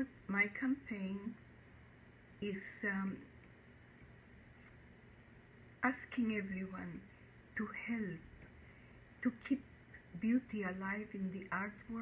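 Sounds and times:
woman saying um: 0.0 - 1.4, 2.4 - 3.3, 5.8 - 7.0, 7.6 - 8.2, 9.2 - 9.6, 10.2 - 12.0.

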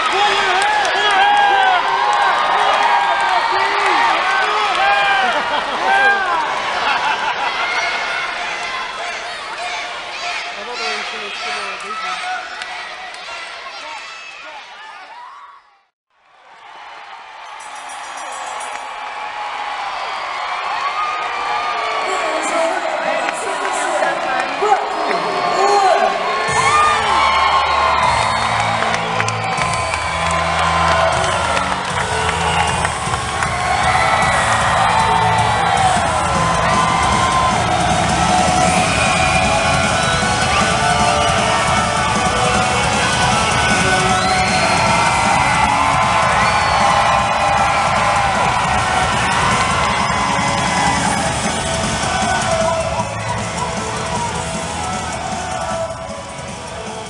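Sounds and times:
crowd cheering and yelling: 0.0 - 57.0
rock music over speakers: 26.5 - 57.0.

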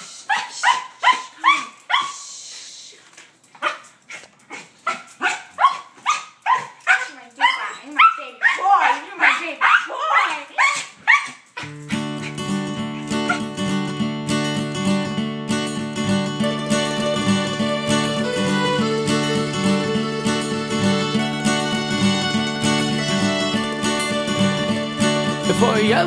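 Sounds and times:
small dog barking and yipping: 0.0 - 2.2, 3.6 - 13.5
acoustic guitar music: 11.6 - 26.0.

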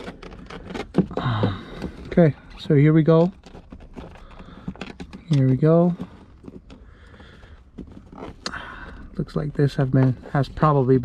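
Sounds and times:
plastic scraping: 0.0 - 11.0.

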